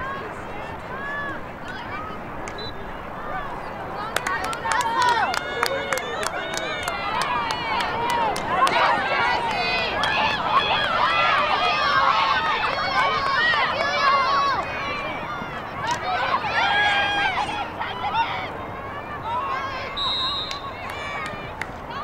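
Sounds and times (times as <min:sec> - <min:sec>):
high voices shouting: 0:02.9 - 0:22.0.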